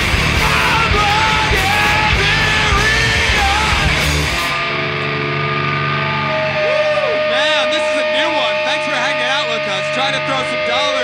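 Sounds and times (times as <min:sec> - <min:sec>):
punk band playing live: 0:00.0 - 0:11.0.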